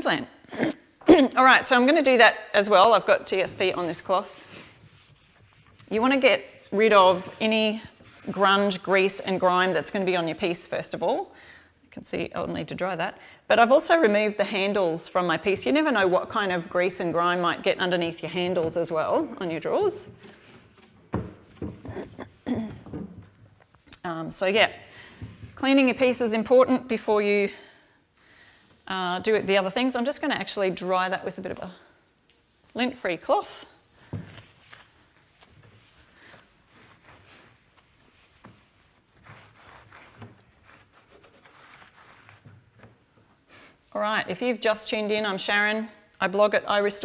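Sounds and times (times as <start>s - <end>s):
cloth rubbing on wood: 3.3s - 10.7s, 18.4s - 22.6s, 34.3s - 43.2s.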